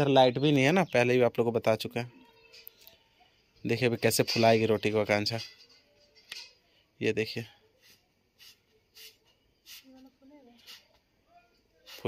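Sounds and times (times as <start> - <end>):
faint brushing noises: 7.5 - 12.0.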